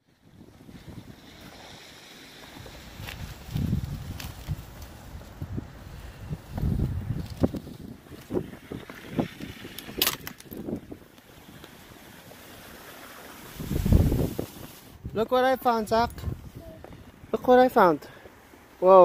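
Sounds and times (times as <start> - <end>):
wind buffeting microphone: 0.2 - 1.9, 2.5 - 12.2, 13.4 - 17.4
sharp crack: 9.4 - 11.8.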